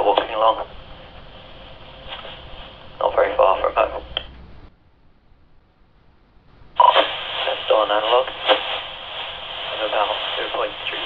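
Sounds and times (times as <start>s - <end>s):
hissy walkie-talkie voice: 0.0s - 0.7s, 3.0s - 4.2s, 6.8s - 11.0s.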